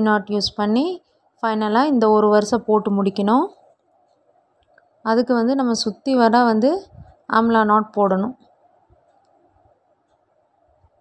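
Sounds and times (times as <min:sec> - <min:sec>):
person speaking: 0:00.0 - 0:03.6, 0:05.1 - 0:08.4.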